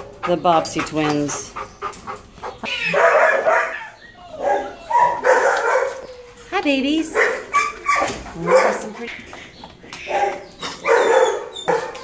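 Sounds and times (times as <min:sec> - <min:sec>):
dog barking: 0:02.9 - 0:06.1, 0:07.1 - 0:09.0, 0:10.1 - 0:12.0.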